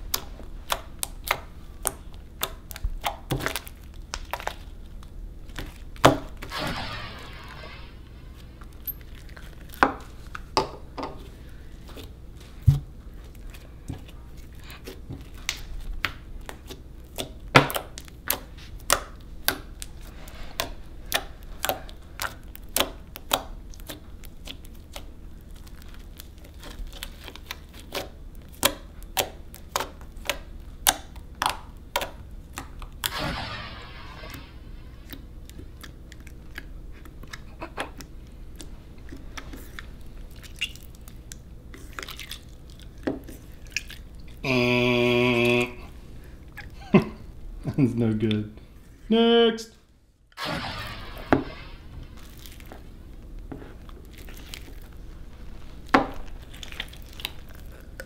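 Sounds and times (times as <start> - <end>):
slime clicking and popping: 0.0 - 6.3, 15.2 - 20.0, 20.6 - 33.1.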